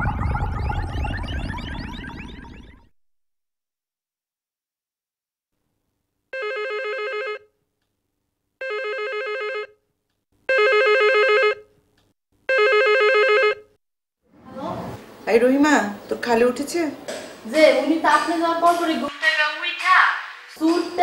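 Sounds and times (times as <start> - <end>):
electronic telephone ringing: 6.4 - 7.5, 8.6 - 9.8, 10.5 - 11.7, 12.5 - 13.7.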